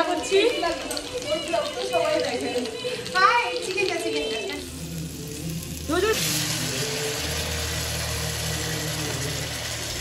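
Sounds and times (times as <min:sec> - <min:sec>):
chicken sizzling in hot pan: 0:00.0 - 0:10.0.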